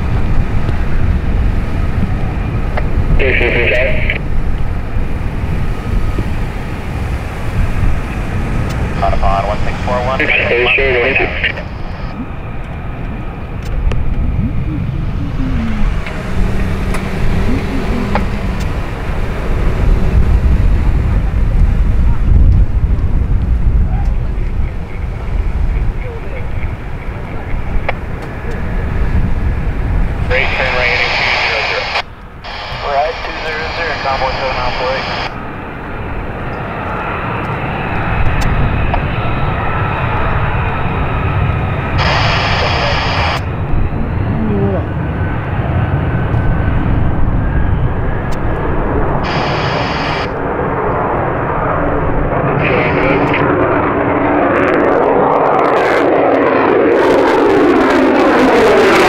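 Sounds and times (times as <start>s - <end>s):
jet engine taking off: 0.0s - 59.0s
radio chatter: 3.1s - 4.2s, 9.0s - 12.4s, 14.2s - 16.2s, 17.0s - 18.8s, 23.9s - 28.1s, 30.3s - 35.3s, 42.0s - 44.9s, 49.2s - 50.3s, 52.5s - 53.5s.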